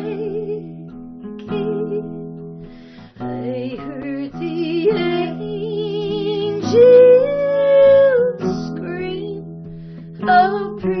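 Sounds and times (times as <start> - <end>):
woman singing: 0.0 - 2.4, 3.0 - 11.0
acoustic guitar: 0.0 - 11.0.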